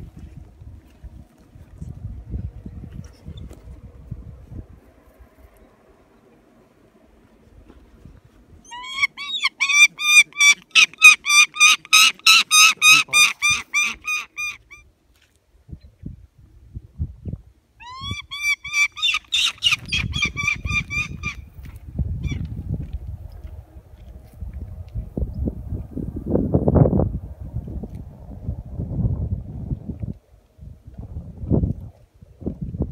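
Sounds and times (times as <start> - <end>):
bird of prey calling high-pitched: 8.6 - 14.8, 17.8 - 21.4.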